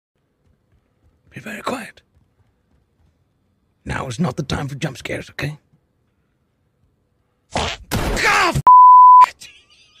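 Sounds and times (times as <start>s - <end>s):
person yelling: 8.2s - 8.6s
censor bleep: 8.7s - 9.3s.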